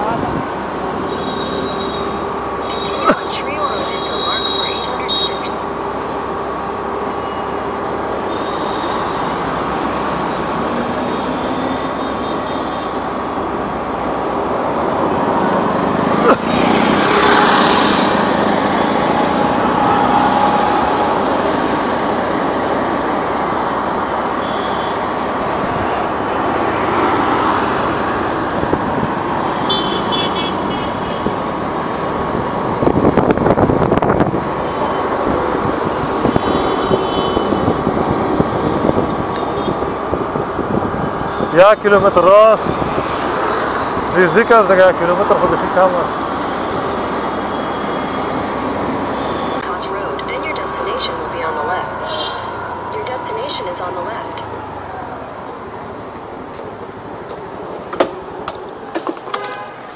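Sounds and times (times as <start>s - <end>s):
road and wind noise: 0.0s - 59.9s
vehicle horns tooting: 29.6s - 31.3s, 36.2s - 37.8s, 59.3s - 59.9s.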